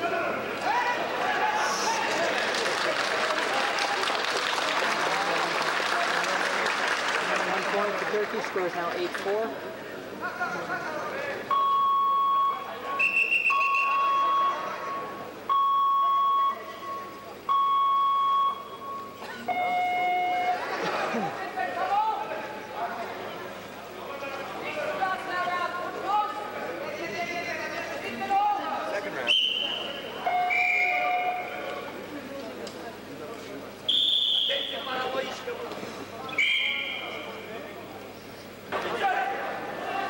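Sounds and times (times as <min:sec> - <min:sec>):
hall voices and chatter: 0:00.0 - 0:40.0
electronic beeps: 0:11.5 - 0:20.6
steady electronic tones: 0:13.5 - 0:20.8.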